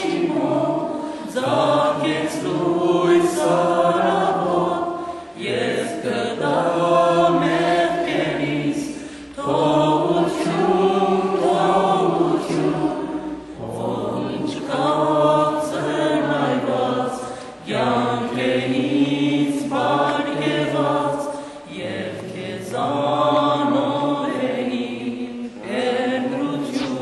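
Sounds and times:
voices singing a hymn: 0.0 - 27.0.

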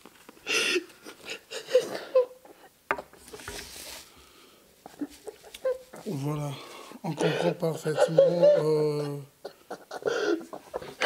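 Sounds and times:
man sobbing: 4.9 - 11.0.

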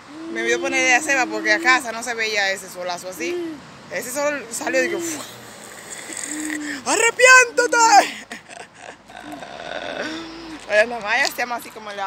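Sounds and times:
woman humming: 0.0 - 2.0, 3.2 - 3.6, 8.5 - 10.7
woman speaking: 0.3 - 5.3, 6.6 - 8.3, 10.6 - 12.0.

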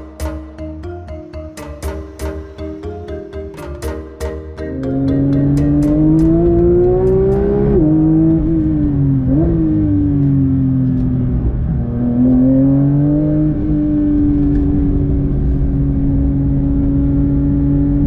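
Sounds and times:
car engine from inside cabin: 4.7 - 18.0.

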